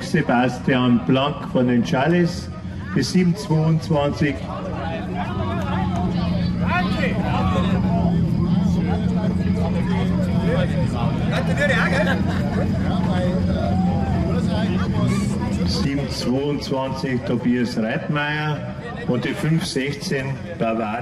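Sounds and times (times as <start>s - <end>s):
low engine drone: 0.0s - 21.0s
people talking: 0.0s - 21.0s.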